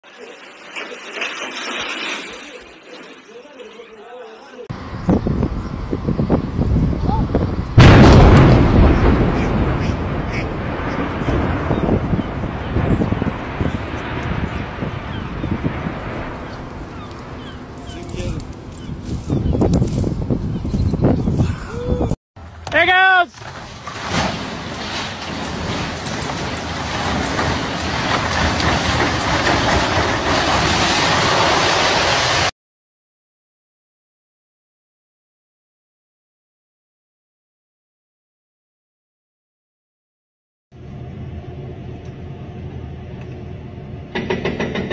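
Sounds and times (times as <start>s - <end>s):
loud explosion blast: 7.8s - 17.6s
concrete silo collapsing: 7.8s - 18.4s, 22.9s - 32.5s
concrete cracking: 23.4s - 32.5s
long rumble: 40.8s - 44.9s.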